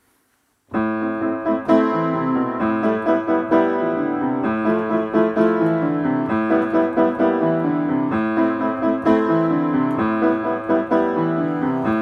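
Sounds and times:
solo piano chords: 0.7s - 12.0s.

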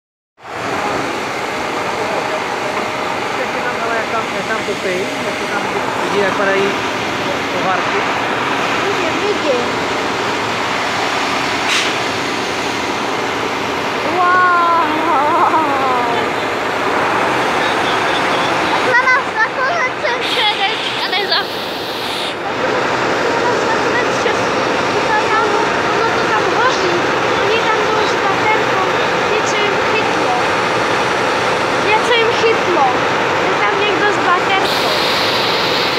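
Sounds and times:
faint voices: 0.5s - 11.0s, 12.8s - 35.9s
steam locomotive hissing steam: 0.5s - 14.0s, 20.0s - 32.5s, 34.5s - 35.9s.

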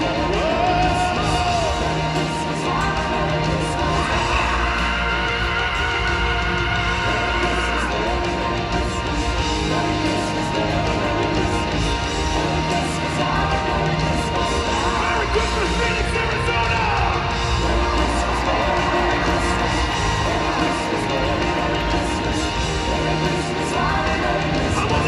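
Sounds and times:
rock band playing live: 0.0s - 25.0s.

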